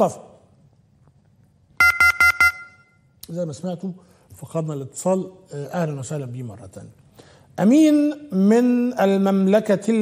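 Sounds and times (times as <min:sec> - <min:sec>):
phone line disconnect beeps: 0:01.8 - 0:03.0.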